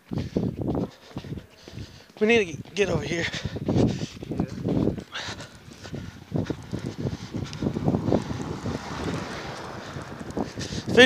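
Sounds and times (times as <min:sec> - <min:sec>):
footsteps running in snow: 0:00.0 - 0:11.0
wind on microphone: 0:00.0 - 0:11.0.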